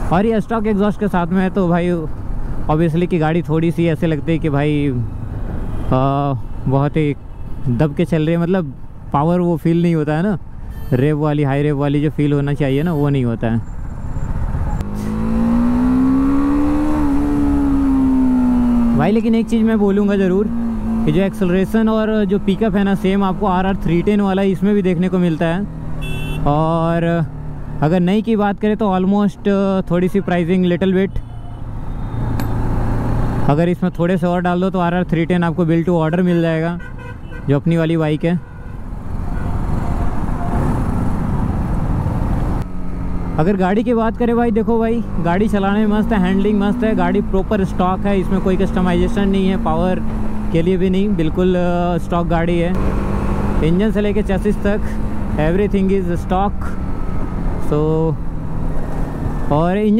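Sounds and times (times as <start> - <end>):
road and wind noise: 0.0 - 59.9
motorcycle engine accelerating: 14.3 - 21.6, 45.0 - 59.7.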